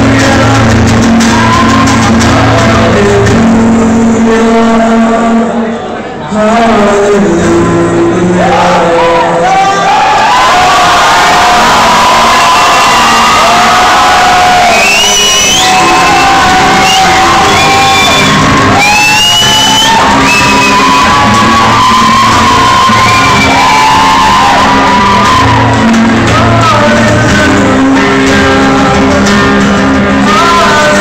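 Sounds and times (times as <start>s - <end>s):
man singing: 0.0s - 10.0s, 12.9s - 18.2s, 18.8s - 31.0s
acoustic guitar: 0.0s - 31.0s
audience shouts and whoops: 9.2s - 26.6s.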